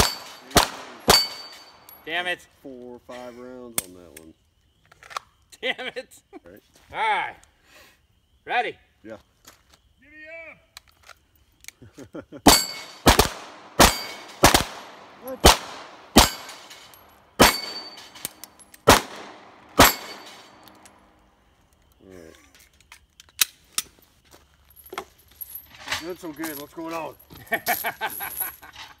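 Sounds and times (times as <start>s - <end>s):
handgun shots: 0.0s - 1.8s, 12.5s - 21.0s
steel plates ringing: 0.0s - 2.2s, 12.5s - 13.1s, 13.8s - 14.5s, 16.0s - 20.9s.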